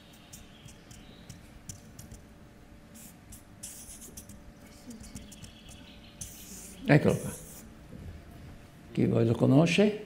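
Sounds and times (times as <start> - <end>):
marker pen scratching on paper: 0.1 - 2.3, 2.9 - 7.7.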